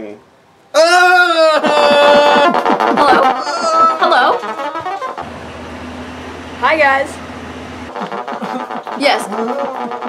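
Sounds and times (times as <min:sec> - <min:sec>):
steady low hum: 0:05.2 - 0:07.9.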